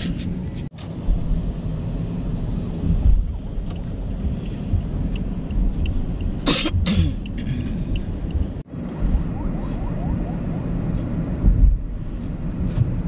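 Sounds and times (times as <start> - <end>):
car road and engine rumble: 0.0 - 13.0
cough-like burst: 6.4 - 7.5.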